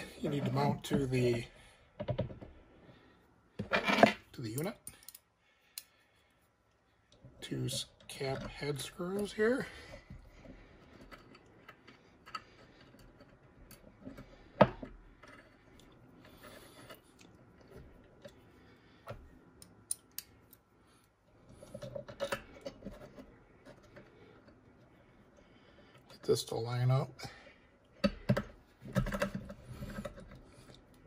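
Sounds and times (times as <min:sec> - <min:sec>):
small metallic clicks and taps: 0:04.6 - 0:05.2, 0:19.1 - 0:20.6.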